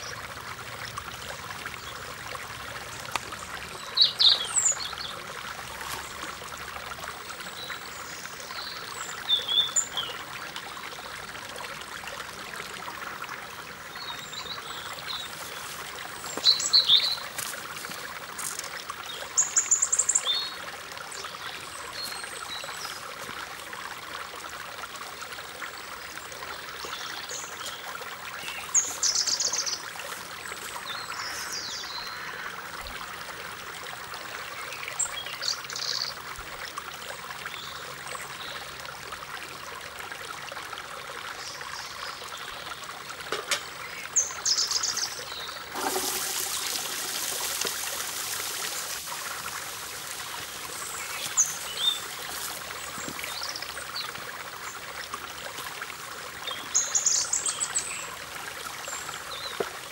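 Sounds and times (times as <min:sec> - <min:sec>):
water trickling: 0:00.0 - 0:59.9.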